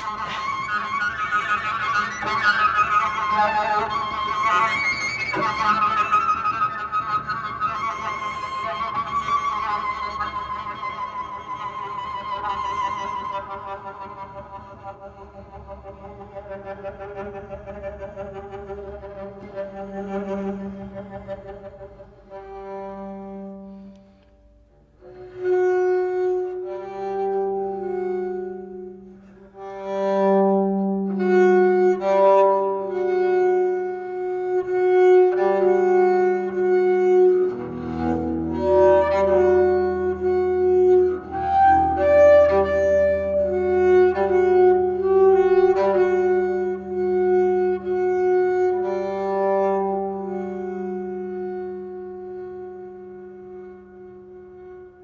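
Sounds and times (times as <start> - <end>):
bowed double bass: 0.0 - 55.0.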